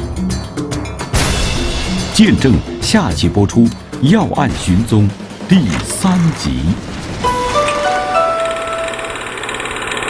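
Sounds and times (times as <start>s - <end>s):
buzzing synthesizer drone: 5.1s - 10.0s
bright chime notes: 7.3s - 9.2s.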